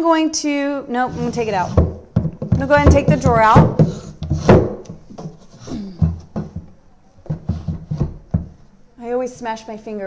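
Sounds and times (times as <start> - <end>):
wooden drawer knocking and clunking: 1.2 - 5.4, 6.0 - 8.6.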